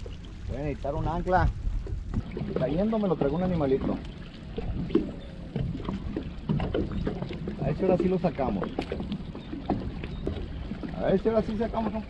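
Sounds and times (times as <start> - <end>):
low rumble: 0.0 - 9.2
water lapping against boat hull: 0.0 - 12.0.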